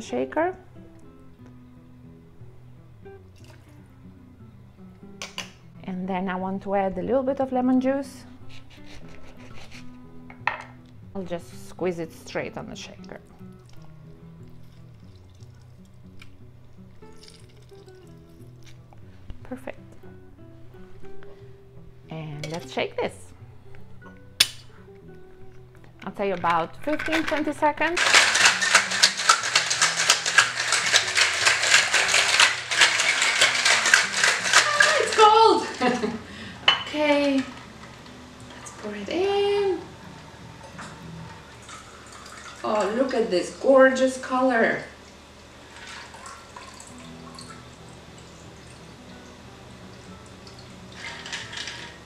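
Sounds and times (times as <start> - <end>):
soft background music: 0.0 - 52.0
ice rattling in cocktail shaker: 17.1 - 18.4, 26.8 - 37.9, 45.8 - 47.6, 50.5 - 52.0.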